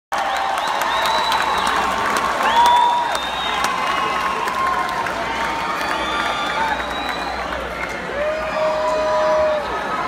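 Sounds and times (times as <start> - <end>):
crowd clapping and cheering: 0.1 - 10.0.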